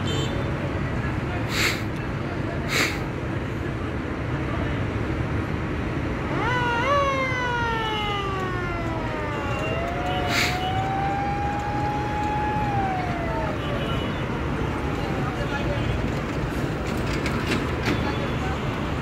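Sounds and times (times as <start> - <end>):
rumble of engines: 0.0 - 19.0
siren wailing: 6.2 - 15.6.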